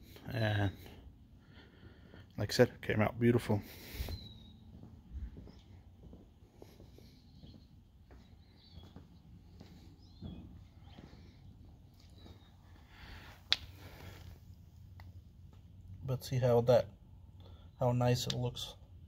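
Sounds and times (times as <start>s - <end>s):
footsteps on concrete pavers: 3.6s - 14.3s.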